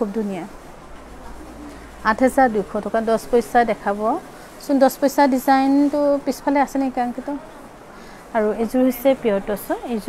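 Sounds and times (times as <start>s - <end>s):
woman talking: 0.0s - 0.6s, 1.3s - 7.6s, 8.3s - 10.0s.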